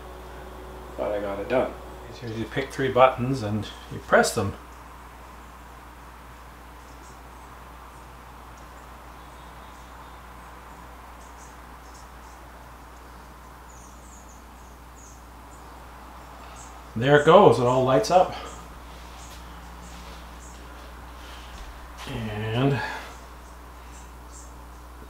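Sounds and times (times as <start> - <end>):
low hum: 0.0 - 25.0.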